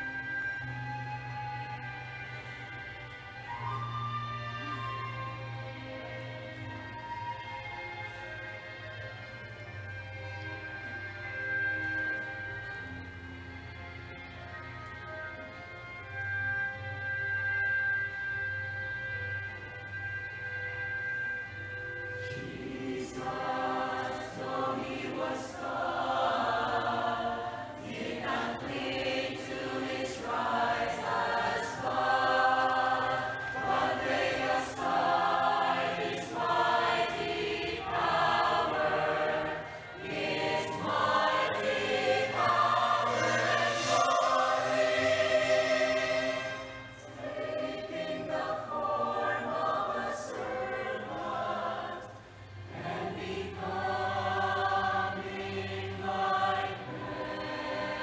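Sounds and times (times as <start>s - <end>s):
mixed choir singing a hymn: 22.2s - 58.0s.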